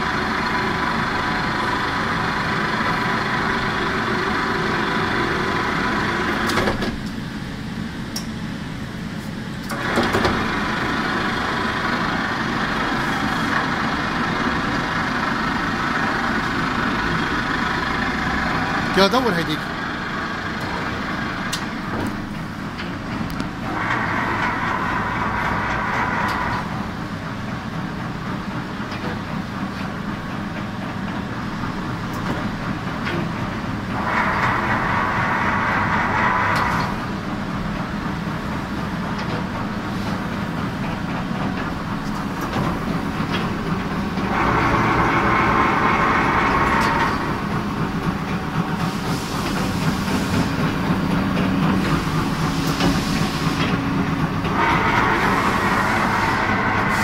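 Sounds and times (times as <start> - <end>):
machine mechanical hum: 0.0 - 57.0
machine hissing surge: 54.6 - 57.0.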